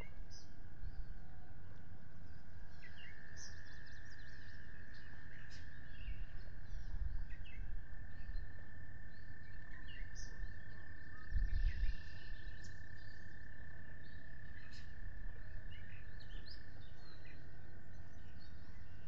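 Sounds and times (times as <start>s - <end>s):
wind rumbling on microphone: 0.0s - 13.1s.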